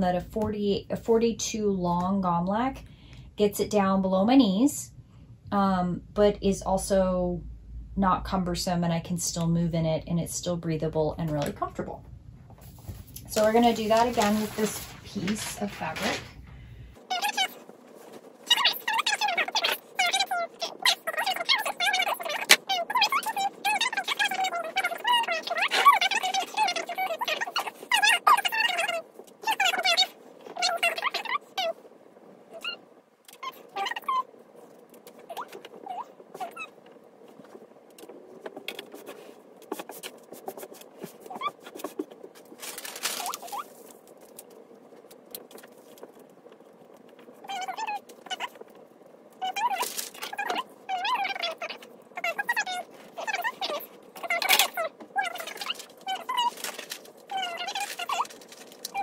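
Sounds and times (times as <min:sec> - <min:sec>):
cloth rustling on table: 0:12.5 - 0:16.5.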